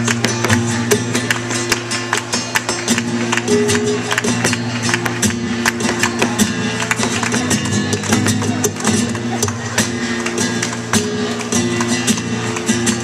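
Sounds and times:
acoustic guitar playing flamenco: 0:00.0 - 0:13.0
sharp hand-claps: 0:00.0 - 0:13.0.

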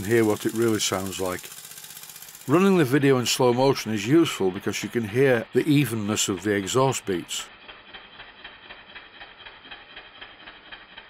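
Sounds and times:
steam engine exhaust beats: 0:00.0 - 0:11.0.

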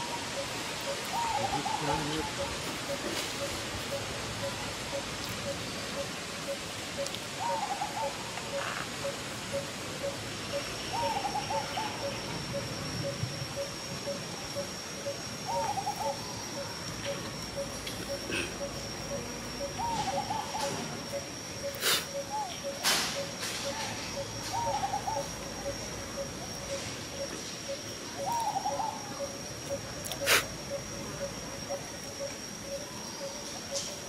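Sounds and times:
wavering animal calls: 0:00.0 - 0:34.0.

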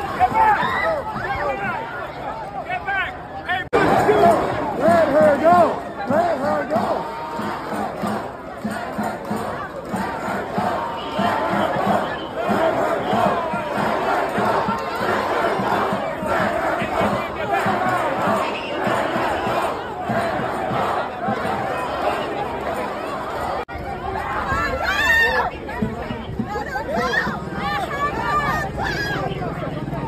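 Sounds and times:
crowd shouting: 0:00.0 - 0:30.0.

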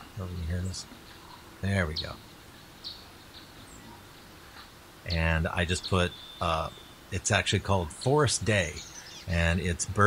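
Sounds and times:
steady background hiss: 0:00.0 - 0:10.0
bird chirps: 0:00.2 - 0:07.2, 0:07.8 - 0:10.0.

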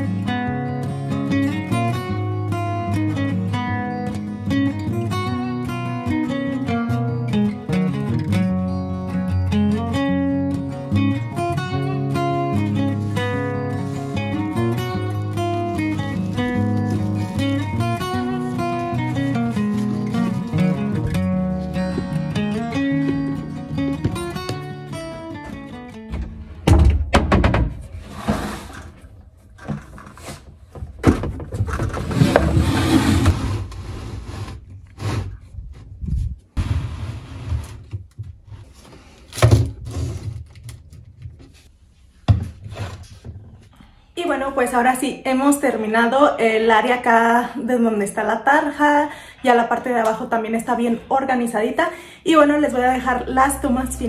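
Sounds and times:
acoustic guitar music: 0:00.0 - 0:26.8, 0:45.6 - 0:54.0.

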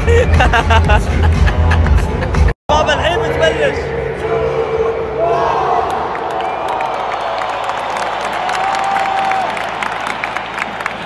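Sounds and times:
stadium crowd roar: 0:02.2 - 0:11.0
scattered clapping: 0:06.2 - 0:11.0.

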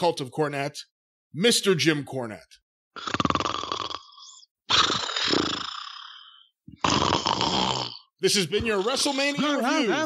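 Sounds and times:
man snoring loudly: 0:03.0 - 0:09.6.

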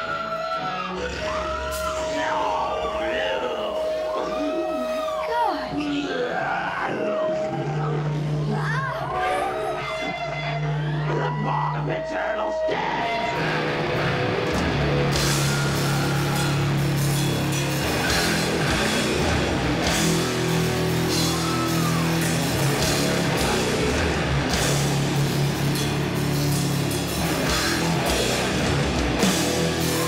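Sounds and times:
distorted guitars and bass: 0:00.0 - 0:30.0
drums: 0:00.0 - 0:30.0.

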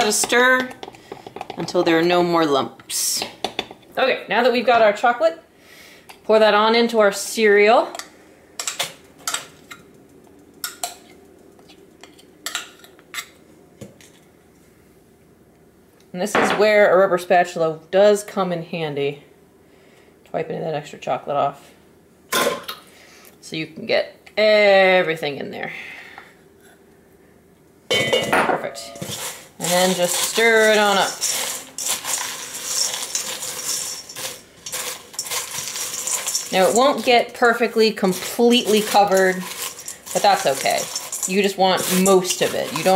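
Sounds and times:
spatula stirring cereal in metal bowl: 0:00.0 - 0:03.8, 0:28.9 - 0:42.9.

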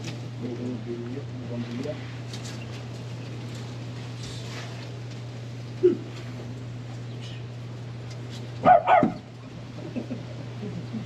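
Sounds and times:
steady low hum: 0:00.0 - 0:11.0
dog barking: 0:08.6 - 0:09.2.

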